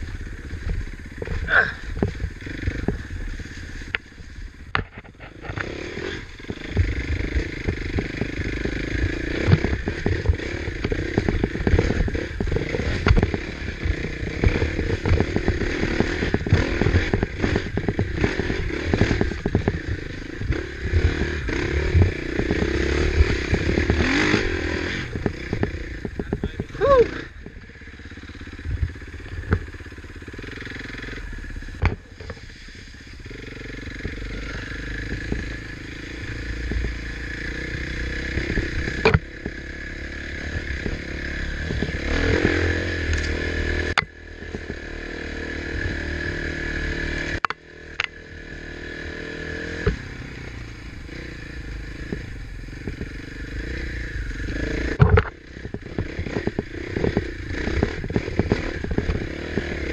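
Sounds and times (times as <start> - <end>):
dirt bike engine revving: 0.0 - 59.9.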